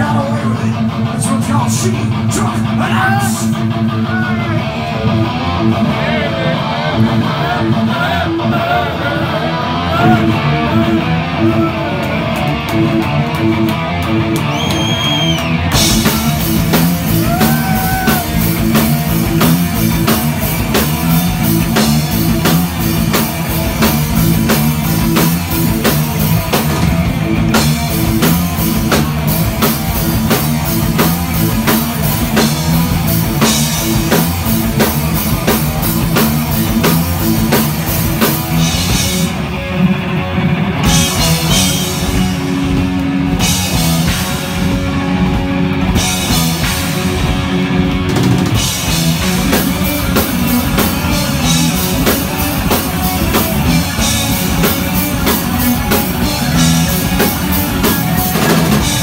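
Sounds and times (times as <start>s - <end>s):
electric guitar: 0.0s - 59.0s
thrash metal band playing live: 0.0s - 59.0s
pounding drum beat: 12.0s - 39.4s, 40.8s - 59.0s.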